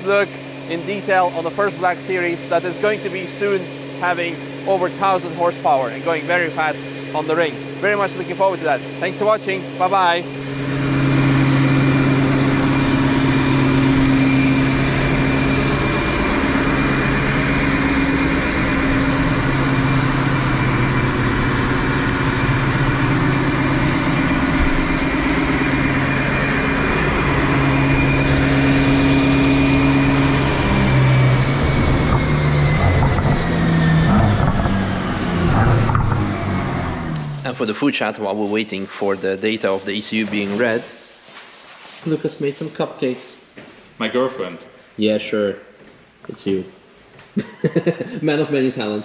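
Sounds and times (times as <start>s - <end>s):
car engine running on dyno: 0.0s - 38.2s
high whine: 0.0s - 40.7s.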